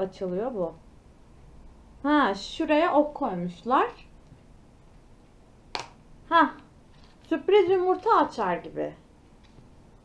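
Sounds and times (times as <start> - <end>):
plastic capsule snapping open: 5.7 - 6.0.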